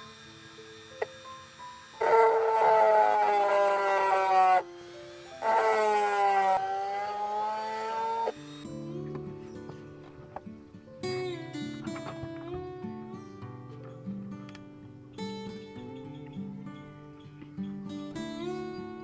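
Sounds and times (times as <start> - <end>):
rotary tool whining on shell: 0.0 - 10.4
soft background music: 0.0 - 19.0.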